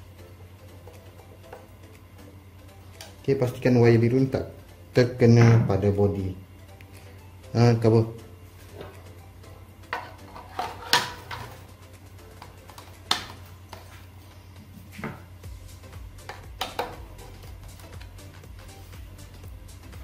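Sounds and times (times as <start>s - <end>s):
quiet background music: 0.0s - 20.0s.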